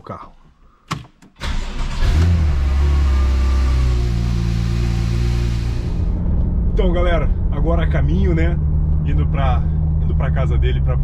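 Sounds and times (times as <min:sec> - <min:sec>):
car engine starting and idling: 0:01.3 - 0:11.0.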